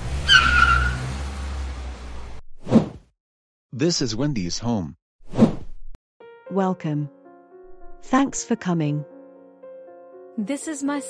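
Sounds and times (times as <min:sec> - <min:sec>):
car engine rumble: 0:00.0 - 0:02.4
tyres screeching: 0:00.2 - 0:01.2.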